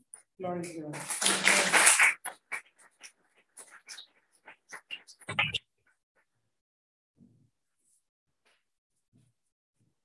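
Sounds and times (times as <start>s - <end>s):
paper sheets rustling: 0.9s - 5.5s.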